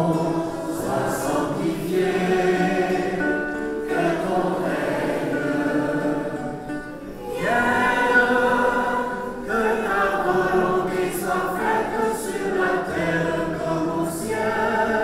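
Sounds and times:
congregation singing: 0.0 - 15.0.

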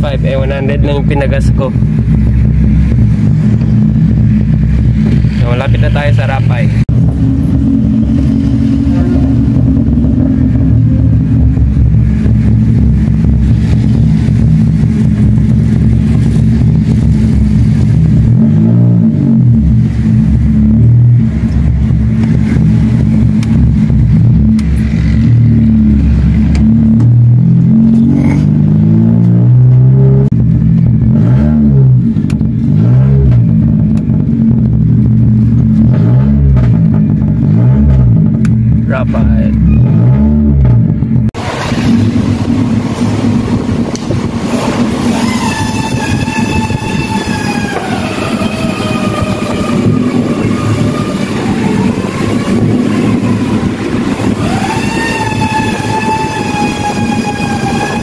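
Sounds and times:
car engine from inside cabin: 0.2 - 41.4.

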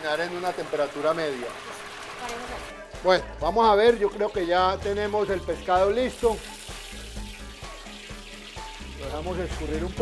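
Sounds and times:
background music with steady bass: 0.0 - 10.0
oil sizzling in a pot: 0.0 - 10.0.

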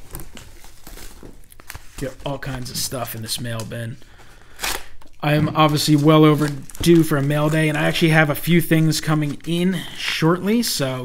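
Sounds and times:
padded envelopes crinkling: 0.0 - 10.8.

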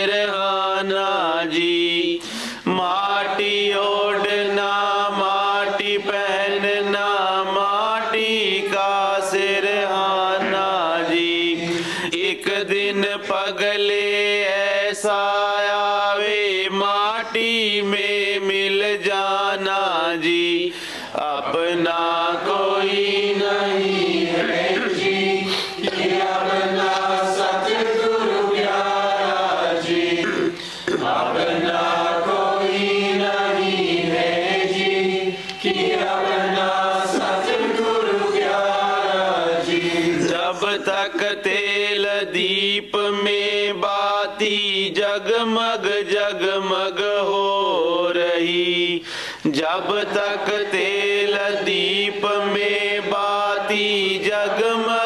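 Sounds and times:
person chanting a hymn: 0.0 - 55.0.

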